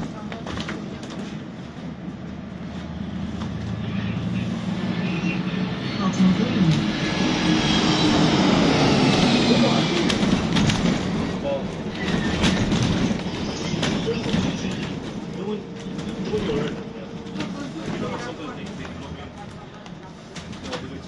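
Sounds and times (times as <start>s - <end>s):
bus engine and road noise: 0.0s - 21.0s
bodywork rattles and clicks: 10.0s - 18.9s.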